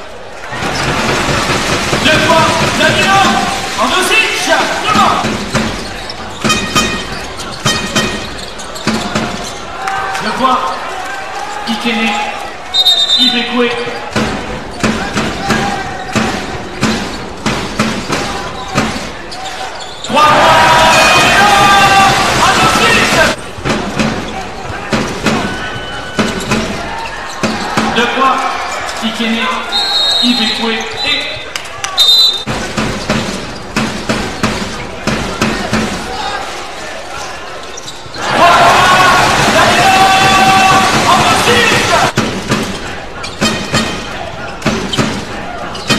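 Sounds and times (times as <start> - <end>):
arena background noise: 0.0 - 45.9
basketball bouncing on hardwood: 4.9 - 9.6, 32.5 - 36.1.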